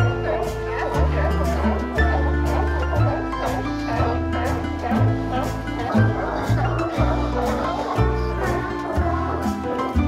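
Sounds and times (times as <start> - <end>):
background music with low notes: 0.0 - 10.0
sea lions barking: 0.0 - 10.0.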